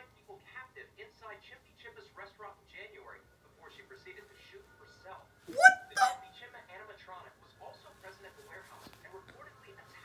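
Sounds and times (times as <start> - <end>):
person making monkey-like hoots: 5.5 - 6.2.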